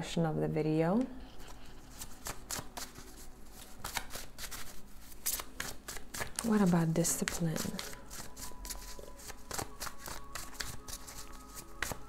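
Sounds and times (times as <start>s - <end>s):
cards being shuffled: 1.4s - 12.0s.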